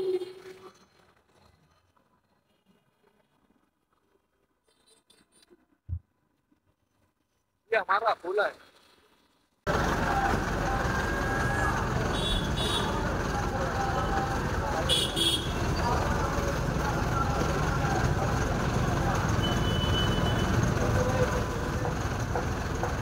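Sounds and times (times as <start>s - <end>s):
indistinct voices: 9.7s - 23.0s
traffic and idling engines: 9.7s - 23.0s.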